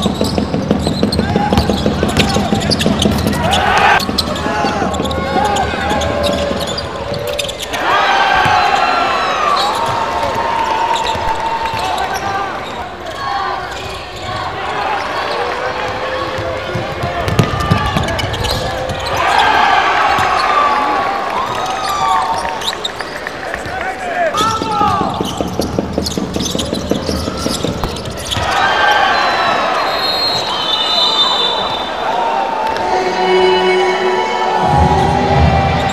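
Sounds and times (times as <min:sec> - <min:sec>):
basketball bouncing on court: 0:00.0 - 0:06.3, 0:16.3 - 0:19.1, 0:24.4 - 0:28.6
crowd noise: 0:00.0 - 0:35.9
echoing voices in arena: 0:00.0 - 0:35.9
ball dribbled on hardwood floor: 0:24.6 - 0:28.4.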